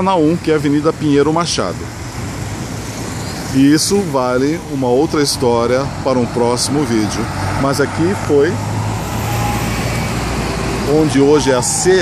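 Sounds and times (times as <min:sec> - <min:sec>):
bus engine hum: 0:00.0 - 0:12.0
bus tyre noise: 0:00.0 - 0:12.0.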